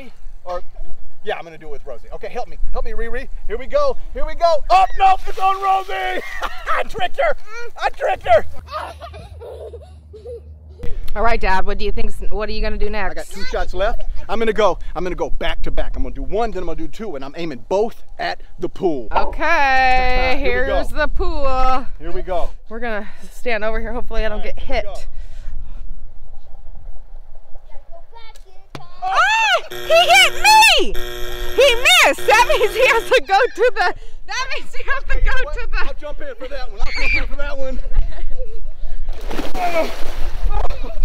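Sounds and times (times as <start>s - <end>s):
soft laughter: 8.6s - 10.9s.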